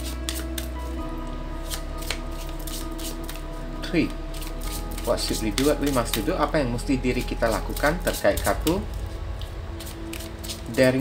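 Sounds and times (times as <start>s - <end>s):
cards being shuffled: 0.0s - 1.0s, 1.6s - 11.0s.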